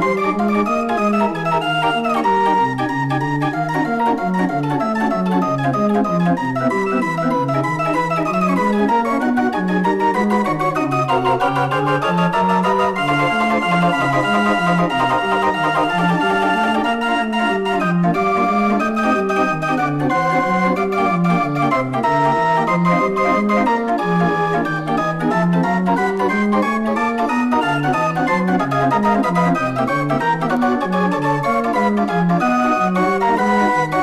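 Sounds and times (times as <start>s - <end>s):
mechanical organ playing jazz: 0.0s - 34.0s.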